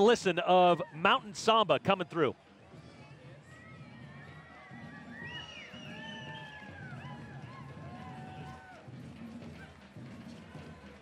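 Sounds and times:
faint samba parade music: 1.3s - 11.0s.

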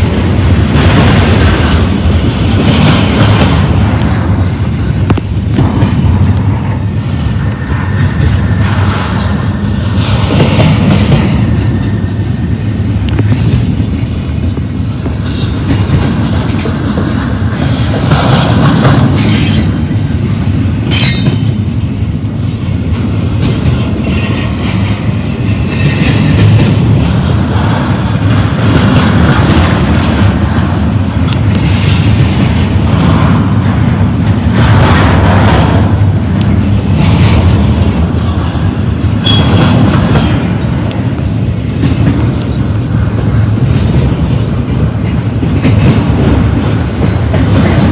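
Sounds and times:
train wheels rumbling on rails: 0.0s - 47.9s
sharp metal clanks: 20.9s - 21.5s.

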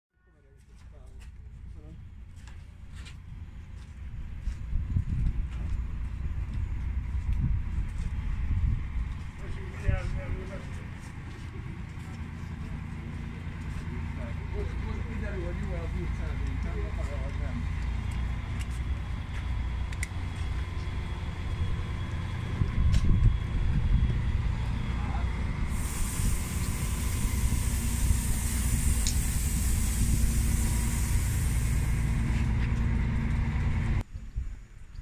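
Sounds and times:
tram running rumble and whine: 1.4s - 34.0s
long hiss of air: 25.7s - 32.3s.

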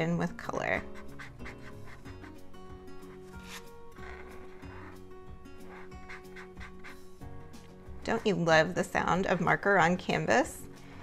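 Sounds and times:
soft background music: 0.0s - 11.0s
marker scratching on canvas: 0.8s - 7.2s.

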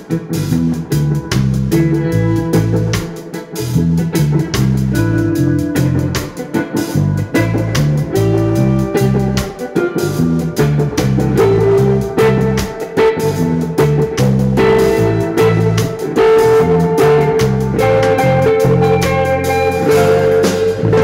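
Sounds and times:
bass guitar figure: 0.0s - 21.0s
drum-kit beat: 0.0s - 21.0s
electric guitar lines: 0.0s - 21.0s.

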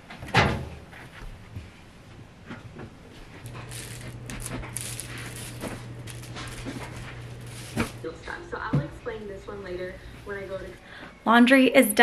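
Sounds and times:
steady low hum: 1.5s - 11.2s
wicker basket creaking and rustling: 3.1s - 8.1s.

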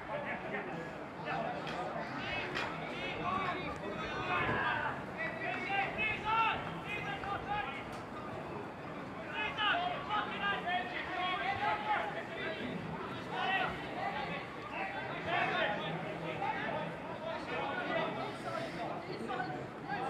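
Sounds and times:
voices calling and chattering: 0.0s - 20.0s.

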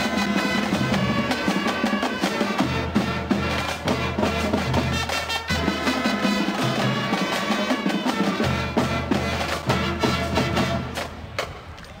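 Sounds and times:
drumline steady beat: 0.0s - 11.7s
marching band flutes and brass: 0.0s - 12.0s.

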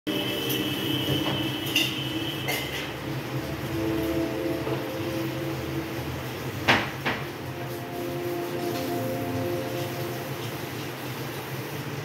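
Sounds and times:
low hum with held tones: 0.1s - 12.0s.

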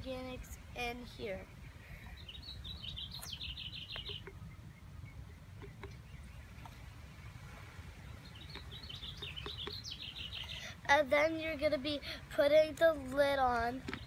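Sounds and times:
songbird singing: 0.0s - 12.0s, 12.6s - 14.0s.

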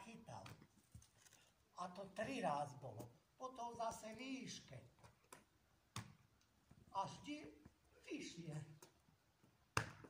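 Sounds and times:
person speaking: 0.0s - 0.8s, 1.7s - 5.2s, 6.8s - 9.0s.

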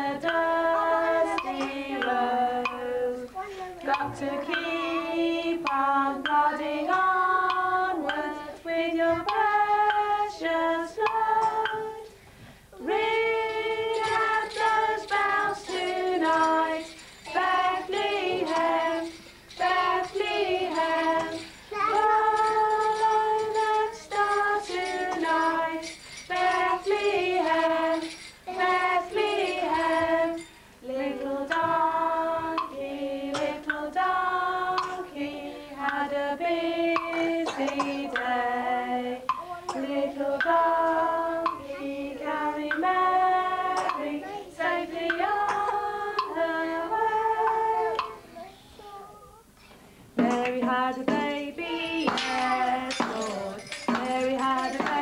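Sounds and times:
women and children singing: 0.0s - 48.6s, 49.4s - 55.0s.

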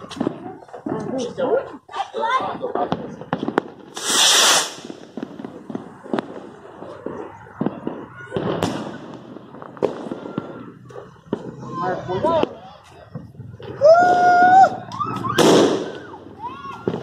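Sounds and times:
firework bangs and crackles: 0.0s - 17.0s
ground firework hissing: 3.1s - 7.0s
aerial shell bursting: 3.9s - 5.1s.

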